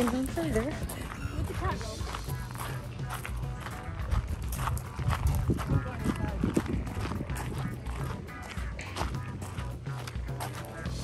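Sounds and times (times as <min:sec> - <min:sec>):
footsteps crunching on gravel: 0:00.0 - 0:11.0.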